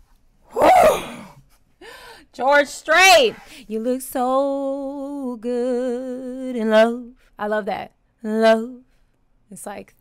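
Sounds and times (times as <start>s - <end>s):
woman exclaiming whew: 0.5s - 1.4s.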